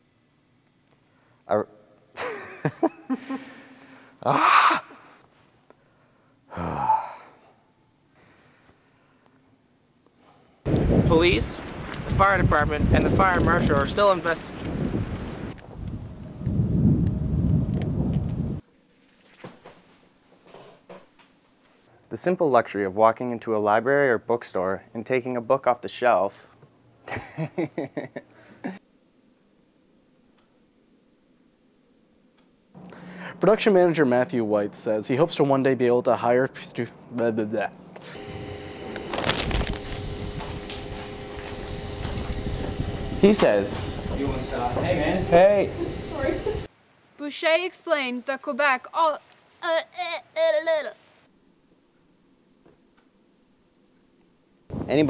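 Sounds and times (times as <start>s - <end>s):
mechanical hum: 0.0s - 47.2s
wind rumbling on microphone: 10.7s - 18.6s, 39.4s - 46.7s, 54.7s - 55.0s
short high beep: 42.2s - 42.5s.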